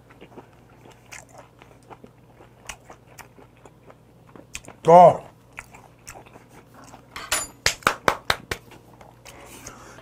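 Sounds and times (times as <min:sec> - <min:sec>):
chewing mouth clicks and smacks: 0:00.1 - 0:04.8, 0:05.5 - 0:07.0.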